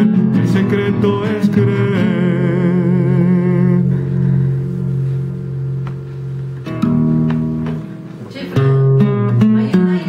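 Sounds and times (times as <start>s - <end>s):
person singing with vibrato: 0.0s - 5.3s
acoustic guitar chord ringing: 0.0s - 10.0s.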